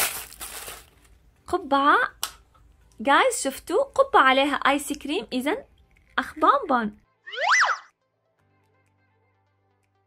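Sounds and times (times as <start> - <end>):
cartoon gliding tone: 7.3 - 7.9.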